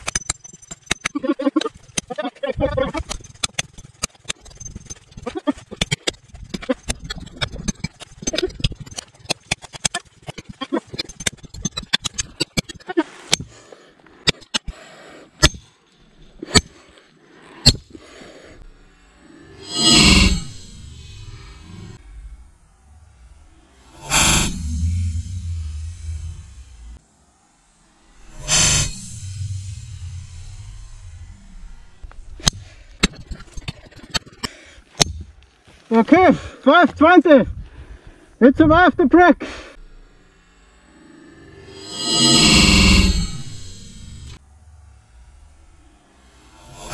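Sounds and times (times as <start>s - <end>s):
knife striking stone: 15.4s - 15.6s
low rumble: 18.6s - 33.7s, 39.7s - 46.9s
loud rushing bursts: 40.9s - 44.4s.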